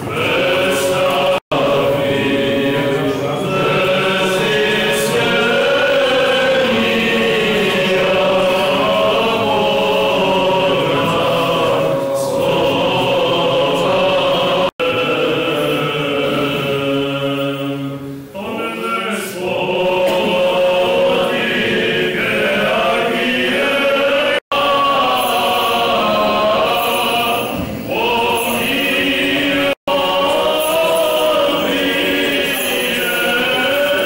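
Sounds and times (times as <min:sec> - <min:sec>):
choir singing liturgical chant: 0:00.0 - 0:34.0.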